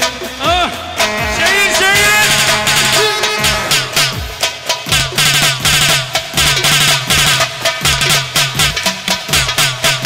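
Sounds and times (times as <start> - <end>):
drums beating quick rhythm: 0.0 - 10.0
steady bass line: 0.1 - 5.8.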